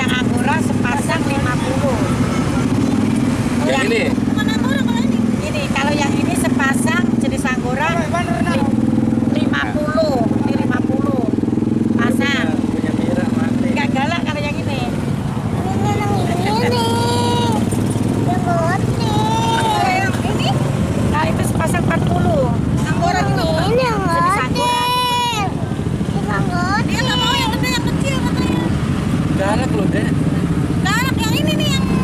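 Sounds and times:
people talking: 0.0 - 11.4, 12.0 - 15.0, 15.6 - 28.8, 29.4 - 30.2, 30.8 - 32.0
motorcycle engine idling: 0.0 - 32.0.

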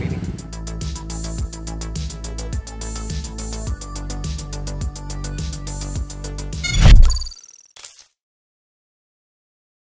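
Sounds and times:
whoosh into a hit: 6.6 - 7.3
short swish: 6.6 - 7.4.

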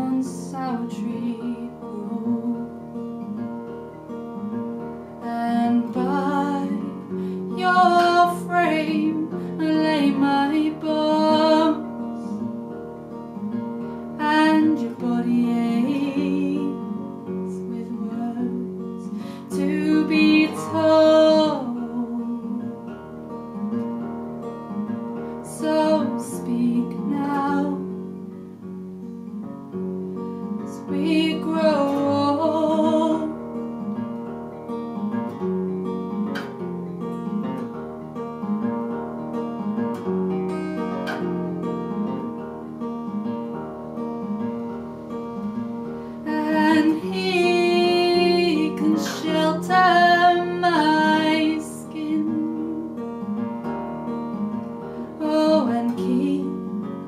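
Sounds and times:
person singing: 0.0 - 2.8, 5.2 - 12.4, 14.2 - 22.8, 25.4 - 28.0, 30.6 - 33.4, 46.2 - 53.1, 55.2 - 57.0
acoustic guitar plucking: 0.0 - 57.0.

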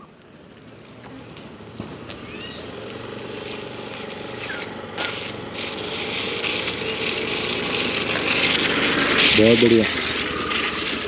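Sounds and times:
scooter engine running: 0.1 - 11.0
bird chirps: 2.2 - 2.8.

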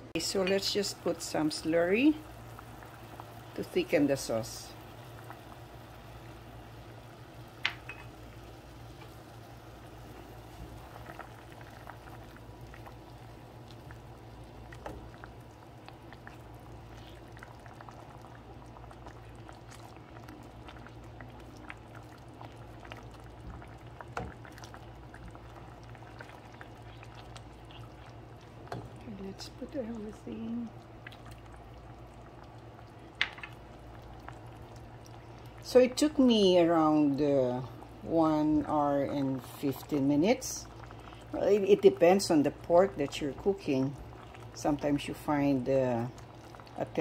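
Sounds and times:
sauce bubbling in a pan: 0.0 - 47.0.

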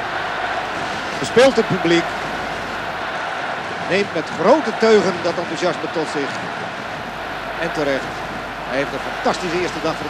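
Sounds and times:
arena crowd cheering and clapping: 0.0 - 10.0.

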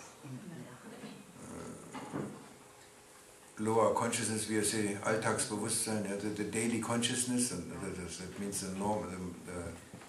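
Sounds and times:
low vocal murmur: 1.4 - 2.0.

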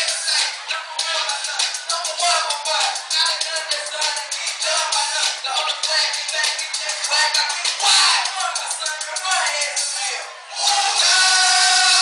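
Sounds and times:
live hip hop over loudspeakers: 0.0 - 12.0.

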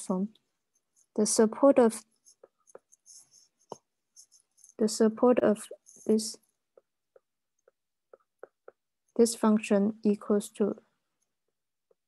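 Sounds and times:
stylus tapping glass screen: 1.9 - 9.0.

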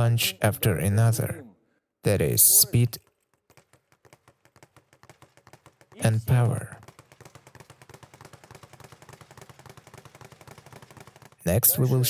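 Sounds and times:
speed bag being punched: 6.8 - 11.5.

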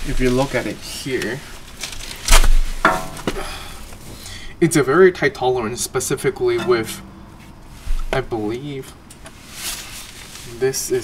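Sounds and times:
ringing metal clink: 6.6 - 7.6.

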